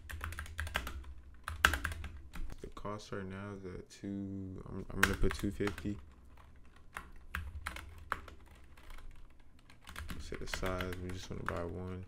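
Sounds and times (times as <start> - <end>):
typing on computer keyboard: 0.0 - 2.6, 4.9 - 12.0.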